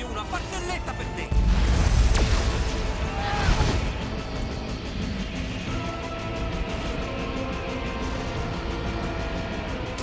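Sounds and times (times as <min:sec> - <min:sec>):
music with sustained notes: 0:00.0 - 0:10.0.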